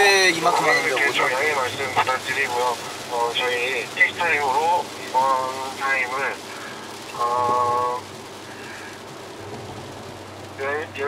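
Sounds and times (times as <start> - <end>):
tyres hissing on wet surface: 0.0 - 11.0
low engine hum: 0.2 - 11.0.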